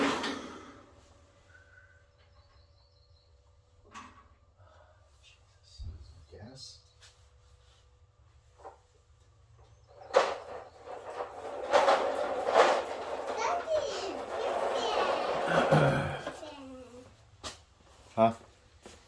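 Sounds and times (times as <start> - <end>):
young child vocalizing: 15.4 - 17.0.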